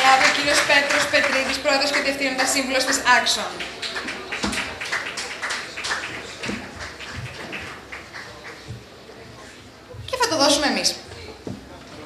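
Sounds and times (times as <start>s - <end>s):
audience applauding: 0.0s - 9.2s.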